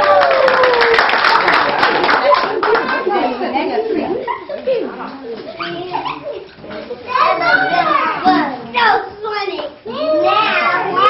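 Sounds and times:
young children talking: 2.2 - 11.0.

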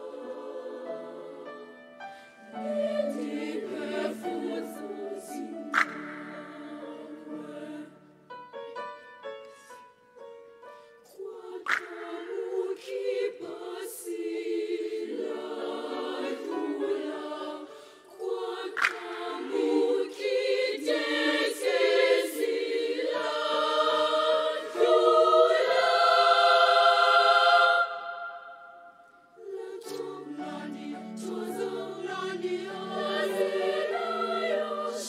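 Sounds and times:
children's choir singing: 0.0 - 8.2, 11.2 - 35.0.

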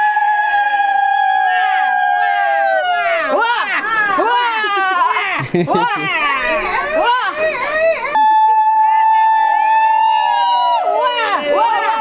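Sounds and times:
woman's high celebratory cry: 0.4 - 12.0
women's voices calling: 2.8 - 8.3, 10.9 - 12.0.

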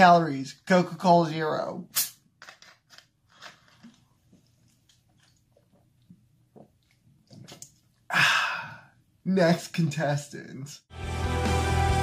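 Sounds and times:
plastic bottle clicks and crinkles: 2.4 - 4.1.

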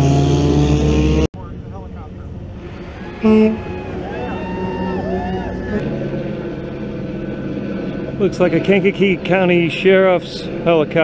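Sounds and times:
crowd voices: 1.4 - 6.6
distant helicopter engine and rotor drone: 1.4 - 11.0.

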